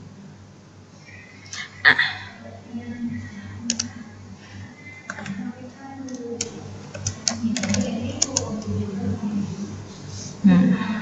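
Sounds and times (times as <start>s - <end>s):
computer keyboard clicks: 3.7s - 3.9s, 5.1s - 5.4s, 6.0s - 8.7s.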